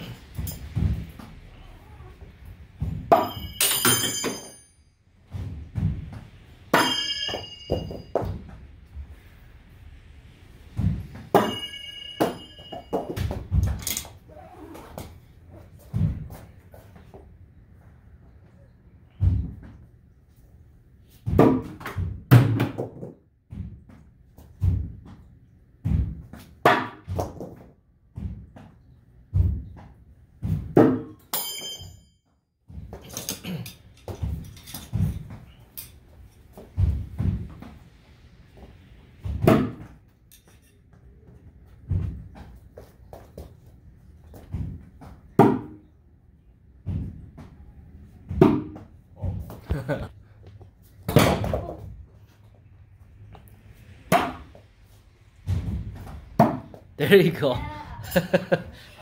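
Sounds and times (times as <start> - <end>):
bright metallic ring: 3.1 - 5.0, 6.8 - 8.4, 11.3 - 13.3, 31.3 - 32.2
knives clattering: 13.8 - 14.2, 33.0 - 36.4.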